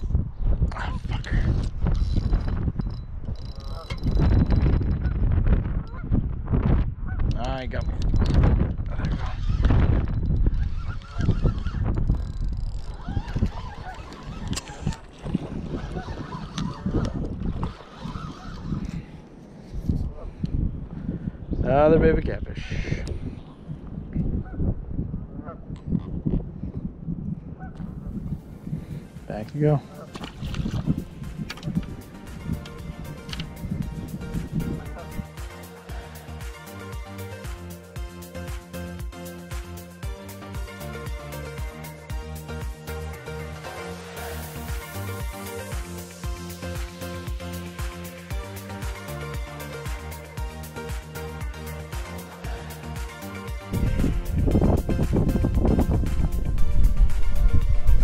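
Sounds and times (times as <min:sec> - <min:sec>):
wind noise: 0:00.0 - 0:35.4, 0:53.5 - 0:58.0
water noise: 0:07.8 - 0:19.6, 0:27.8 - 0:58.0
geese honking: 0:12.9 - 0:18.8
steady low rumble: 0:49.4 - 0:58.0.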